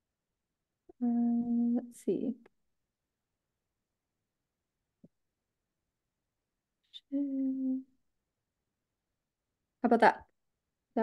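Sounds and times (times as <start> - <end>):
woman humming: 7.1 - 7.9.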